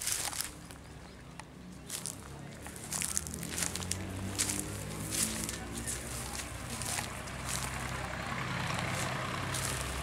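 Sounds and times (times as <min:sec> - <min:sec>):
diesel engine humming: 0:00.0 - 0:10.0.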